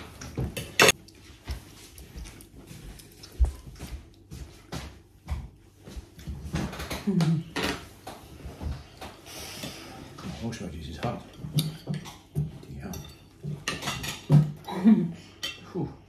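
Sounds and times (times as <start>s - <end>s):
cutlery scraping on plates: 0.6s - 1.0s, 11.3s - 14.6s.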